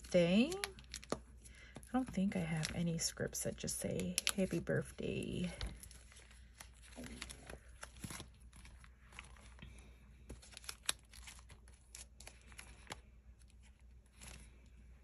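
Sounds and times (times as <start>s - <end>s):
plastic sleeves crinkling: 0.0s - 15.0s.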